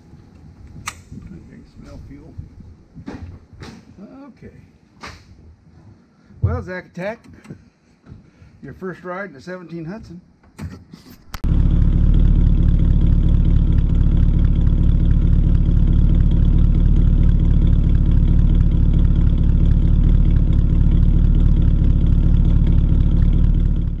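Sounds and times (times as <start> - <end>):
car engine idling: 11.4 - 24.0.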